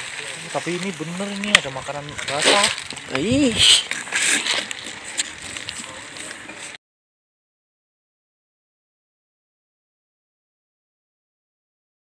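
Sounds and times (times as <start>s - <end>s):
rustling and handling noise: 0.0s - 6.8s.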